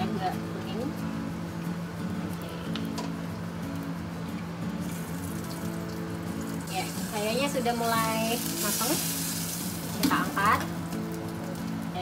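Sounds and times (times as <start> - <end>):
food sizzling in a wok: 1.8 - 12.0.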